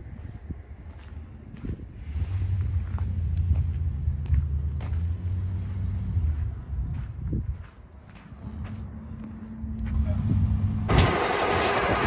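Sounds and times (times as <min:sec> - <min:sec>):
large truck engine rumbling: 0:00.0 - 0:12.0.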